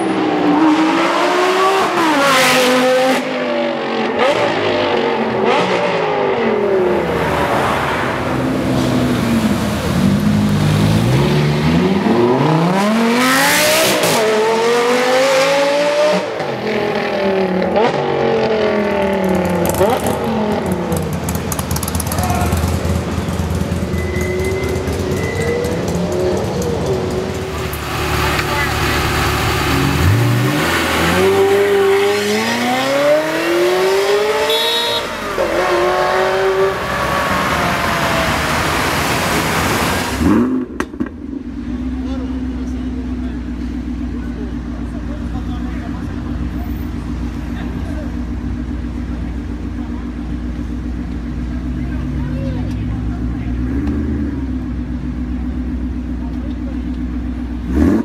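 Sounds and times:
sports car engine accelerating: 0.0 - 58.0.

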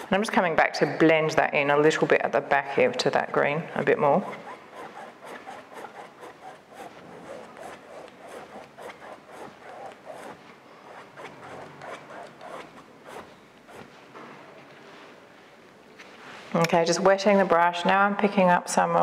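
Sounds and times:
paintbrush rubbing on canvas: 3.1 - 14.2.

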